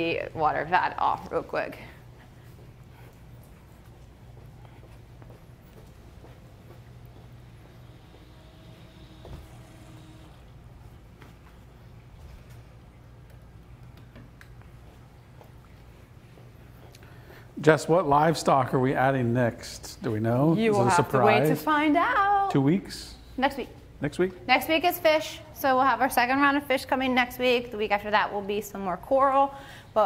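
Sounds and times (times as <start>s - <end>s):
faint low hum: 0.0s - 25.9s.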